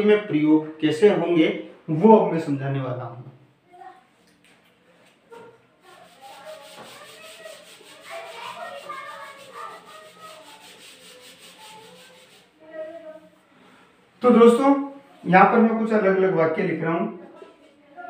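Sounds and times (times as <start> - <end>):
palm rubbing on whiteboard: 5.8 - 12.6.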